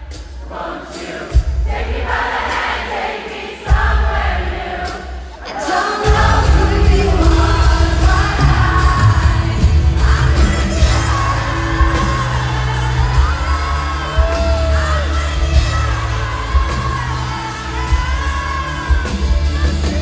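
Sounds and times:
audience singing along: 0:00.0 - 0:20.0
live pop-rock band: 0:00.0 - 0:20.0
woman singing lead: 0:00.4 - 0:20.0.

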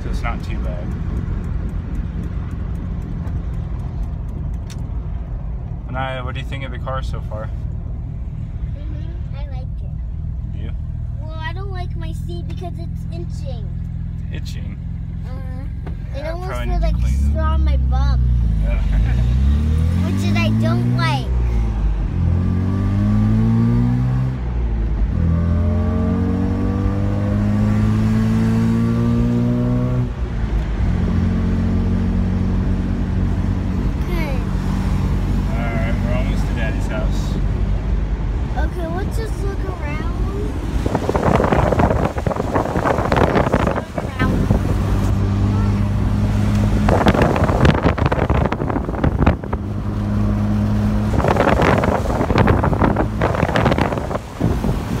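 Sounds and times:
road noise: 0:00.0 - 0:55.0
rotary engine accelerating: 0:13.0 - 0:55.0
wind gusts: 0:19.2 - 0:55.0.

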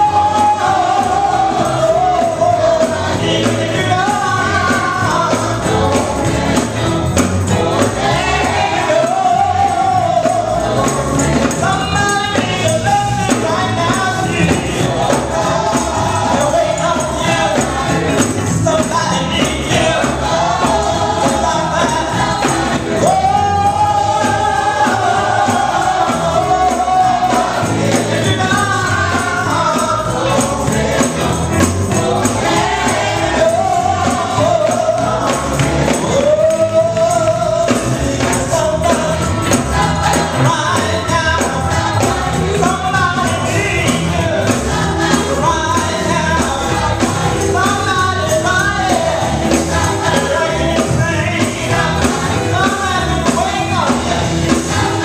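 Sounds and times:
choir singing: 0:00.0 - 0:55.0
drum kit hits: 0:00.0 - 0:55.0
electric bass line: 0:00.0 - 0:55.0
gospel band playing: 0:00.0 - 0:55.0
tambourine: 0:00.0 - 0:55.0.

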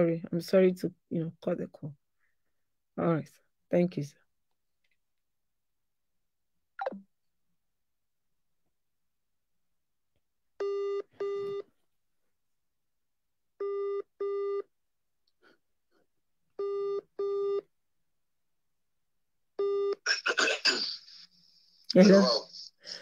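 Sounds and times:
laughter: 0:20.1 - 0:23.0
person speaking: 0:20.1 - 0:23.0.

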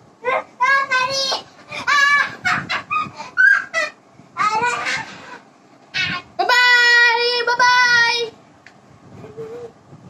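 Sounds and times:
laughter: 0:01.9 - 0:04.0.

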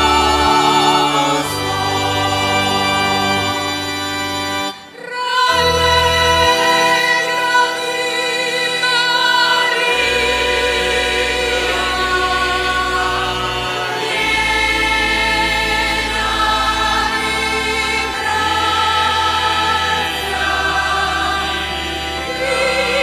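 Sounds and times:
sustained low accompanying notes: 0:00.0 - 0:04.8, 0:05.5 - 0:23.0
choir singing a hymn: 0:00.0 - 0:23.0.

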